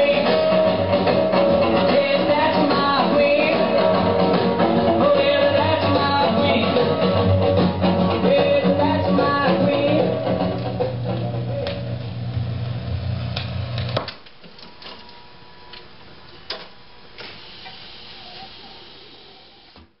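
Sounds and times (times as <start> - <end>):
jukebox record playing: 0.0 - 14.5
jukebox mechanism humming: 0.0 - 20.0.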